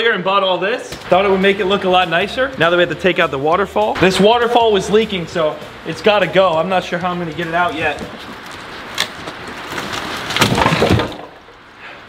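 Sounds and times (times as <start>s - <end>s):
water noise: 1.0s - 12.0s
plastic scraping and cracking: 7.9s - 11.4s.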